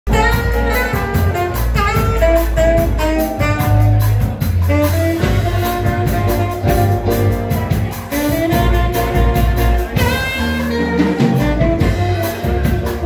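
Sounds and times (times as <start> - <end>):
drum kit cymbal beat: 0.1 - 13.0
plucked double bass: 0.1 - 13.0
saxophone melody: 0.1 - 13.0.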